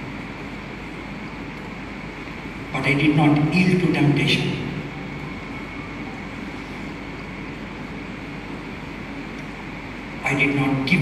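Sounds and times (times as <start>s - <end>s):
constant low hum: 0.0s - 11.0s.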